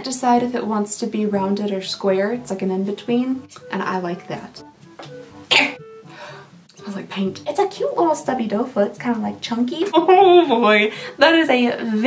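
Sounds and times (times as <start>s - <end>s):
woman clearing her throat: 5.5s - 5.8s.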